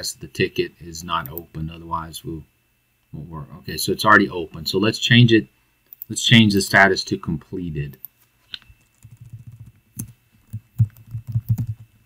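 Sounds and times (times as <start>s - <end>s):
computer keyboard typing: 8.8s - 11.9s.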